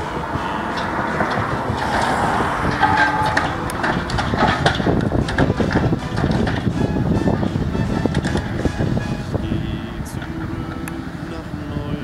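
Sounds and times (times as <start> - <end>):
heavy machine engines running: 0.0 - 12.0
steady whine: 0.0 - 12.0
metal knocks and crunches: 1.2 - 6.8.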